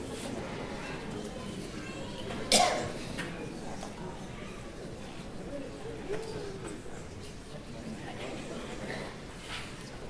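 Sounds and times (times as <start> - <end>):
murmur of voices: 0.0 - 10.0
person coughing loudly: 2.5 - 2.9.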